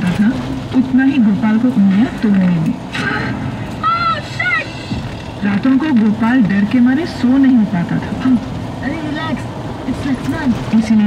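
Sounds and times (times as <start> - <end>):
vehicle road and engine noise: 0.0 - 11.0.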